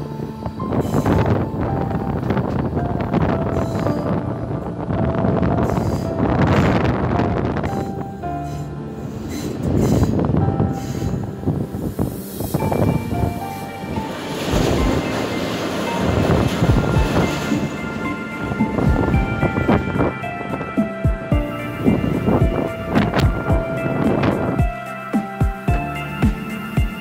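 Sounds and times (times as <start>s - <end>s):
train rumble and rail clatter: 0.0s - 27.0s.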